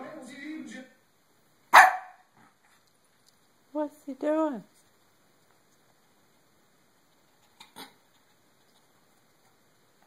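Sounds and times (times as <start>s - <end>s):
dog barking: 1.7s - 2.3s.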